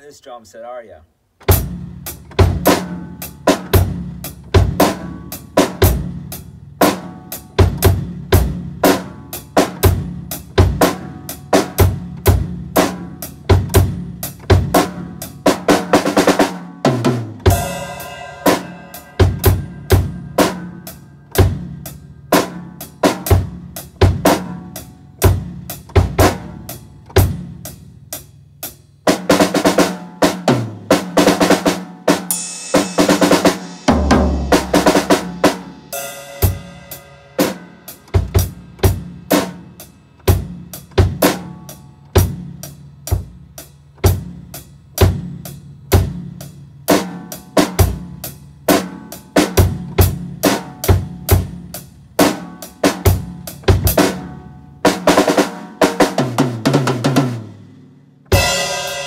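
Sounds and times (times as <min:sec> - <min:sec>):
tom drum fill: 0:01.4 - 0:27.6, 0:29.1 - 0:59.0
kick and snare drum groove: 0:01.4 - 0:59.0
cymbal crashes: 0:17.5 - 0:20.2, 0:58.4 - 0:59.0.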